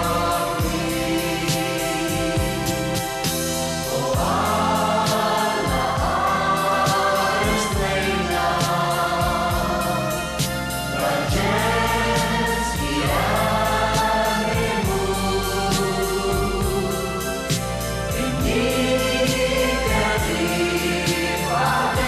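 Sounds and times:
group singing in harmony: 0.0 - 22.0
pop band with bass: 0.0 - 22.0
steady drum beat: 0.0 - 22.0.

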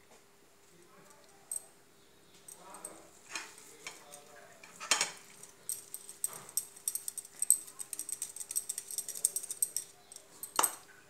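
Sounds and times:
faint steady hum: 0.0 - 11.0
utensils clicking and knocking: 2.5 - 10.8.

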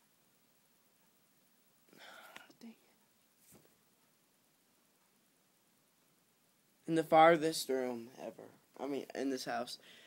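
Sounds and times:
man whispering: 1.9 - 3.0.

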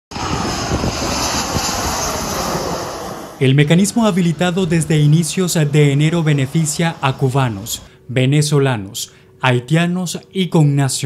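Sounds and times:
airliner engines passing overhead: 0.1 - 8.1.

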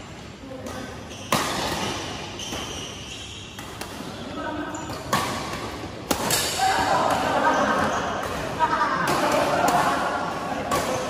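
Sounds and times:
rackets hitting shuttlecock: 4.8 - 11.0.

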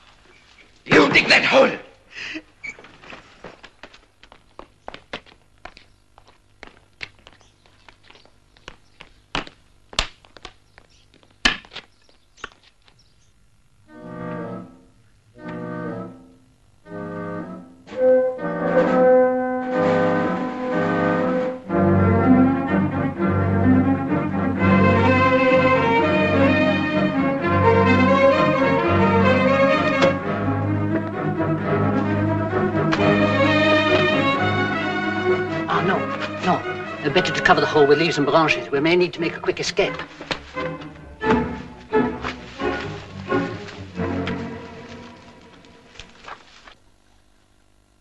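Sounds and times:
orchestral chords: 13.8 - 46.2
film score music: 13.8 - 46.4.

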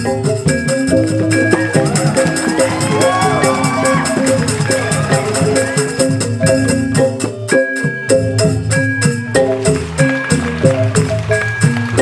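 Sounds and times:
rapid cymbal beat: 0.0 - 12.0.

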